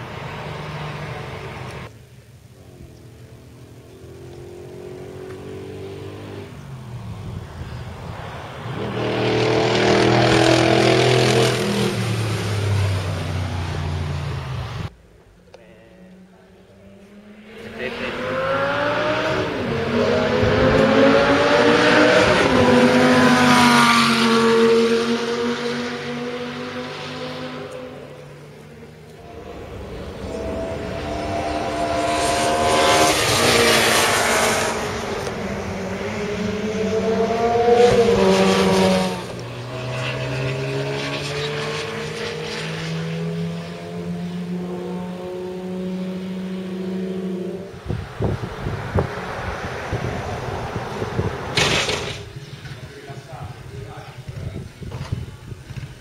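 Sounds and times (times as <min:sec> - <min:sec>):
sports car engines passing: 0:00.0 - 0:56.0.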